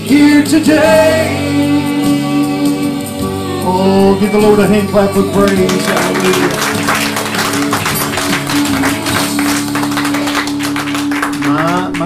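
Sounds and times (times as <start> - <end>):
gospel backing music: 0.0 - 12.0
hands clapping: 5.2 - 12.0.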